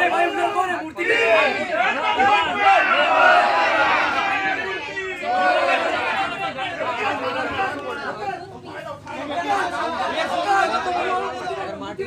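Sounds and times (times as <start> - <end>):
crowd of men talking: 0.0 - 12.0.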